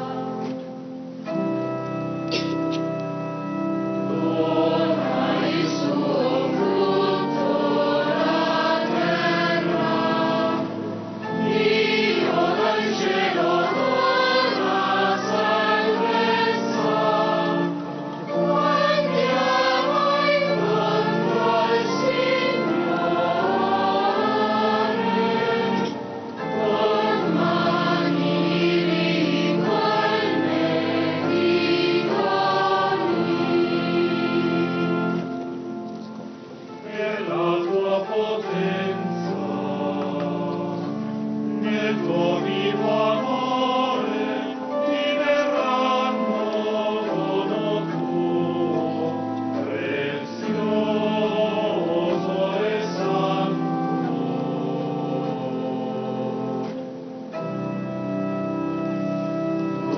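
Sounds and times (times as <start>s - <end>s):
choir singing a hymn: 0.0s - 59.9s
organ: 0.0s - 59.9s.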